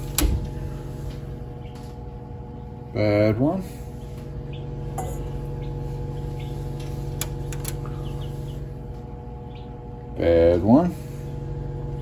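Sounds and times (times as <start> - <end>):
small fan humming: 0.0 - 12.0.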